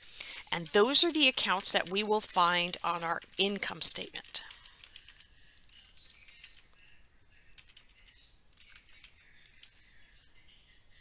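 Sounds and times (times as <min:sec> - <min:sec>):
computer keyboard typing: 0:00.2 - 0:09.9.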